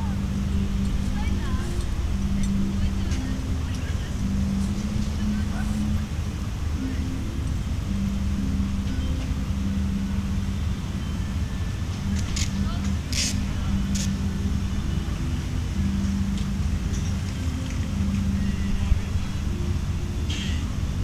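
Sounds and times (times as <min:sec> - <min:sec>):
bass notes over loudspeakers: 0:00.0 - 0:21.0.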